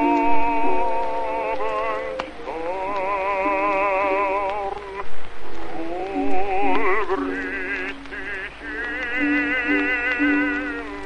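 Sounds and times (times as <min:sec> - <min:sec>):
baritone singing with vibrato: 0:00.0 - 0:11.0
record surface hiss: 0:00.0 - 0:11.0
soft accompaniment: 0:00.0 - 0:11.0.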